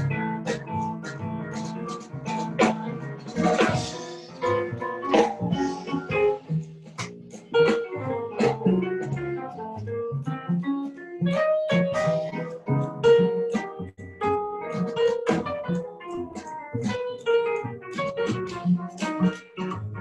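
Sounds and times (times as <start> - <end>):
drum strikes: 0.0 - 9.7
double bass: 0.0 - 15.4
jazz piano: 0.0 - 20.0.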